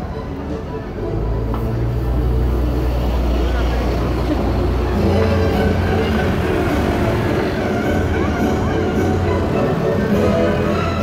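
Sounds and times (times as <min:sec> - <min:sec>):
crowd voices: 0:00.0 - 0:11.0
vehicle engine humming: 0:00.0 - 0:11.0.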